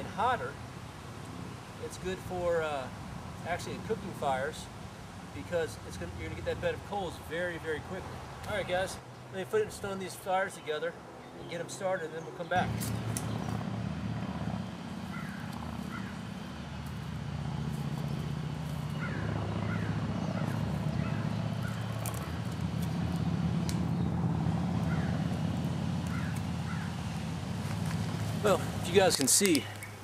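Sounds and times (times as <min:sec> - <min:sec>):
low engine hum: 0:12.5 - 0:30.0.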